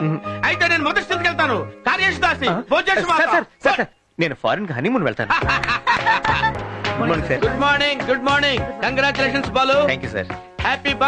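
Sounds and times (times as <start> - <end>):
film background music: 0.0 - 3.2, 5.3 - 11.0.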